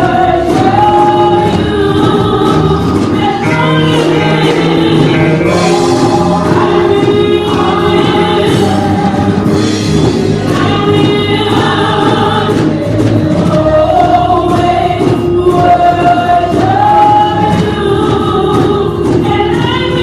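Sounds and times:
live band with guitar: 0.0s - 20.0s
women singing in harmony: 0.0s - 20.0s.

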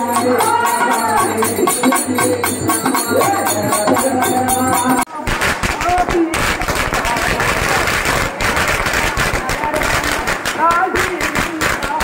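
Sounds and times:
people's voices: 0.0s - 12.0s
firecrackers crackling: 5.1s - 12.0s.

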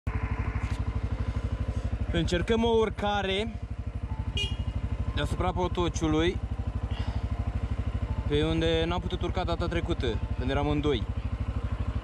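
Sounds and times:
engine running at low revs: 0.1s - 12.0s.

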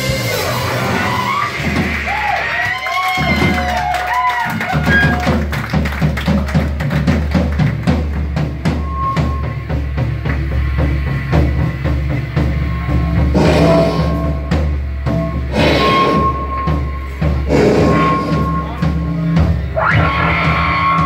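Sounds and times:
drums and bass fast beat: 0.0s - 21.0s
electric guitar bending notes: 8.8s - 21.0s.

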